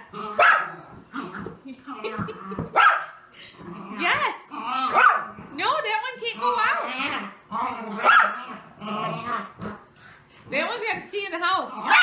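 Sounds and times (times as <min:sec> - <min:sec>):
dog barking: 0:00.4 - 0:00.7, 0:02.7 - 0:03.2, 0:04.9 - 0:05.3, 0:08.0 - 0:08.4.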